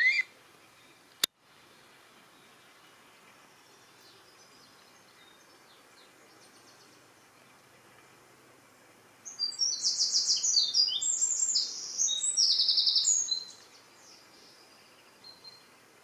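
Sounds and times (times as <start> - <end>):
songbird singing high trills: 0.0 - 0.3, 9.2 - 15.7.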